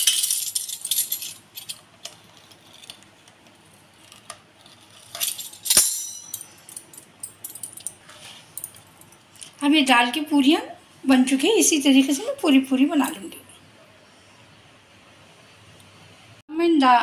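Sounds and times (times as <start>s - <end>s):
sharp clink: 5.2s - 6.9s.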